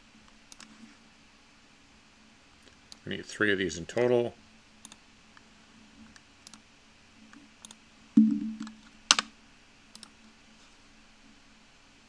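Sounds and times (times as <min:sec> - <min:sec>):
computer mouse clicking: 0:00.5 - 0:00.8, 0:06.1 - 0:06.6, 0:07.6 - 0:07.8, 0:09.9 - 0:10.2
loud dull thump: 0:08.2 - 0:08.7
sharp double knock: 0:08.2 - 0:08.7.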